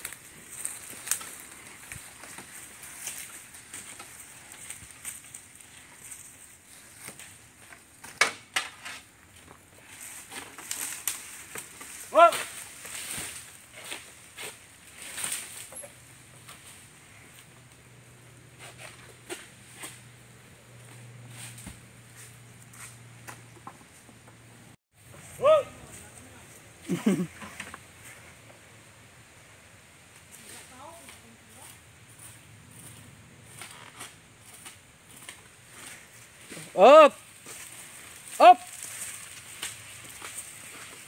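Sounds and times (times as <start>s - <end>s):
dry fronds crunching underfoot: 0.0s - 23.5s, 30.2s - 41.0s.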